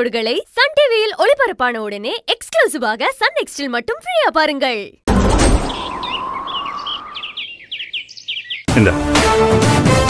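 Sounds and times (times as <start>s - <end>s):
whoosh with rising tone: 5.1s - 7.8s
small birds chirping: 5.6s - 8.7s.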